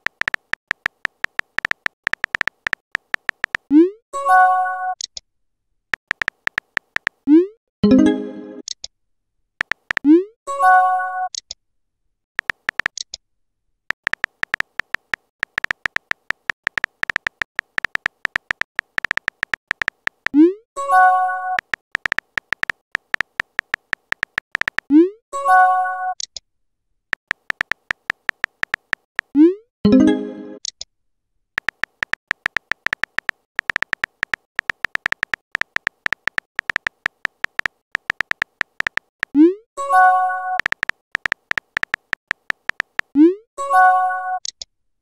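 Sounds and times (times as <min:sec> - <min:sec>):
keyboard typing clicks: 0:00.0 - 0:03.9, 0:06.0 - 0:07.5, 0:09.6 - 0:10.2, 0:12.4 - 0:13.1, 0:13.9 - 0:20.5, 0:21.3 - 0:25.0, 0:27.2 - 0:29.5, 0:31.6 - 0:43.3.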